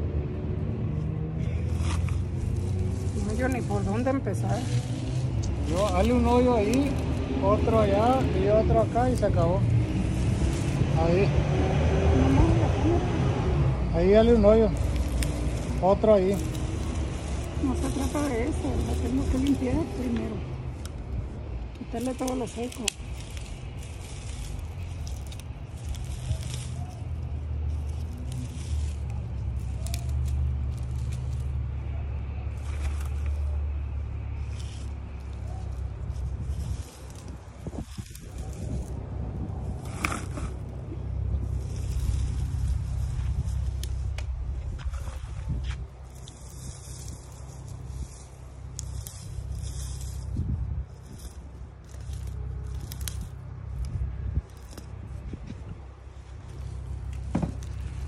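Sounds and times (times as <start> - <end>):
dry grass rustling and tearing: 0.0 - 58.0
steady low rumble: 0.0 - 58.0.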